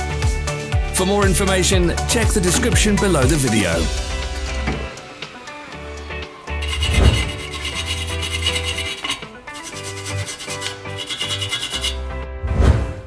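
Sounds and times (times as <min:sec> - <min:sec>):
background music: 0:00.0 - 0:13.0
wire brush scrubbing metal: 0:06.4 - 0:12.1.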